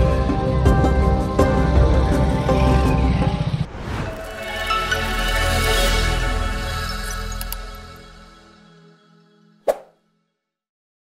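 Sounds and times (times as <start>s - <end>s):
sharp pop sound effect: 9.7s - 9.9s.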